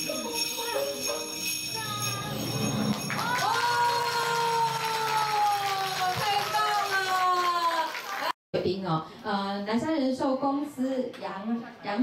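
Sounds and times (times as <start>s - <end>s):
small hand bells jingling: 0.0s - 4.0s
group clapping: 2.9s - 8.4s.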